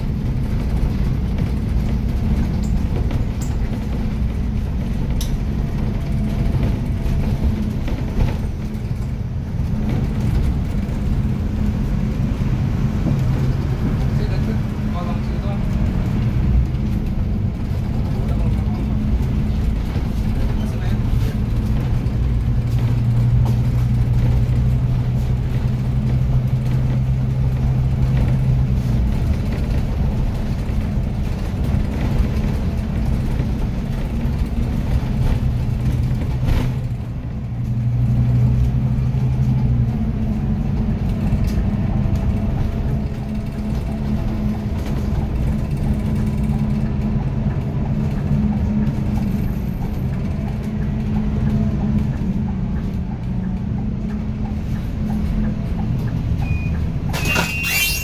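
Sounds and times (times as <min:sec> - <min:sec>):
bus engine drone: 0:00.0 - 0:58.0.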